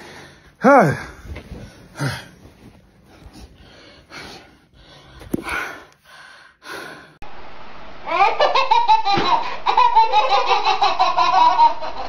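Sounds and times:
babies laughing: 8.1s - 12.0s.

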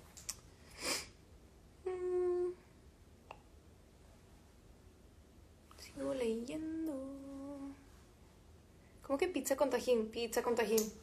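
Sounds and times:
woman humming a held note: 1.8s - 2.6s.

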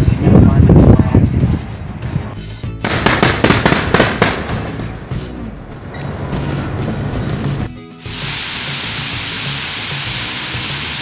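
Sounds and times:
fireworks crackling and popping: 2.8s - 5.5s, 6.4s - 11.0s.

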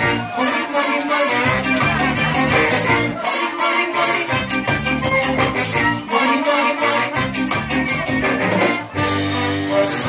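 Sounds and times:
live band playing: 0.0s - 10.0s.

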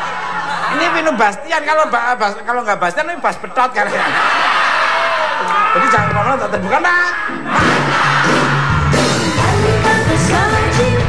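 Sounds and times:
band music with bass: 7.3s - 11.0s.

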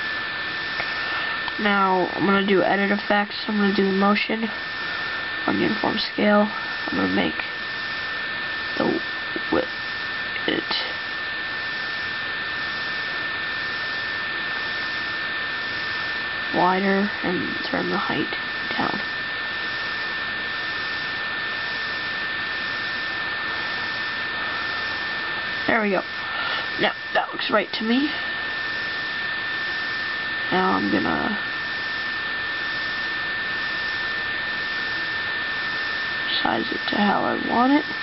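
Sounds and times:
computer fan whirring: 0.0s - 38.0s
high-pitched whine: 0.0s - 38.0s
steady hiss: 0.0s - 38.0s.

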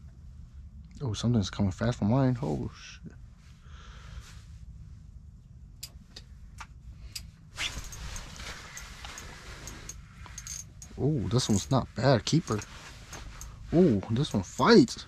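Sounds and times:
steady low hum: 0.0s - 15.0s
rustling noise: 7.5s - 14.8s.

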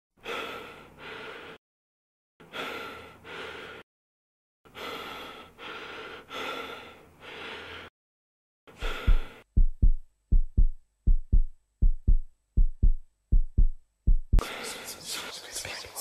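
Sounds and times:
person gasping for breath: 8.7s - 9.5s.

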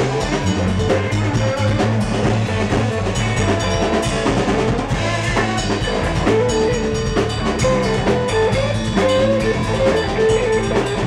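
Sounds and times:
drum kit beat: 0.0s - 11.0s
electric bass: 0.0s - 11.0s
electric guitar: 0.0s - 11.0s.

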